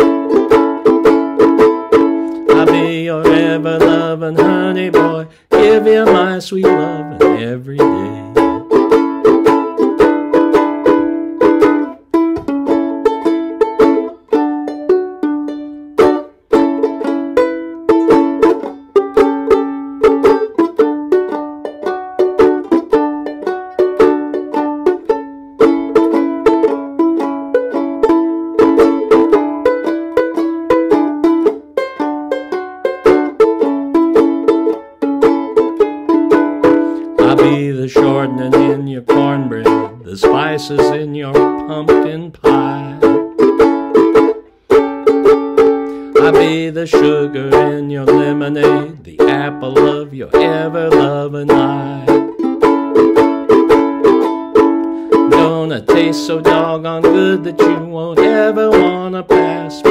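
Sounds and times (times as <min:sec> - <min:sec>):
banjo ukulele playing: 0:00.0 - 0:59.9
person singing: 0:02.2 - 0:09.6, 0:36.3 - 0:44.3, 0:45.3 - 0:59.9.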